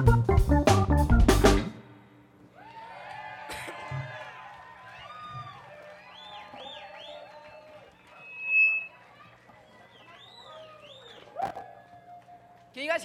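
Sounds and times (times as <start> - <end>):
audience cheering and whooping: 2.6 - 12.7
high whistle: 8.1 - 9.1.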